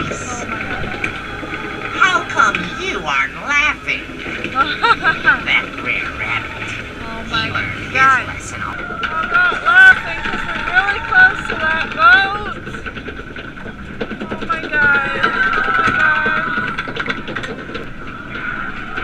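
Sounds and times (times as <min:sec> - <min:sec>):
voices sliding in pitch: 0:00.0 - 0:13.0, 0:14.2 - 0:17.1
steady high tone: 0:02.0 - 0:08.9.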